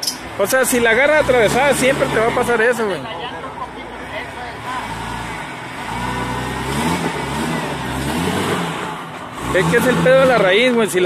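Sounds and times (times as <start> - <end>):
car engine under load: 0.0 - 11.0.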